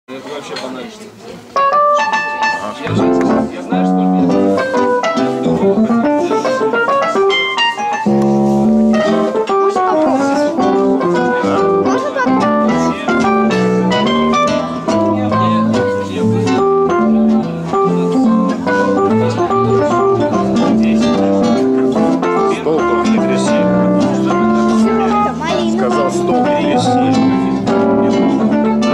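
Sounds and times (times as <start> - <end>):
classical guitar: 1.2 - 28.9
electronic keyboard: 1.6 - 28.9.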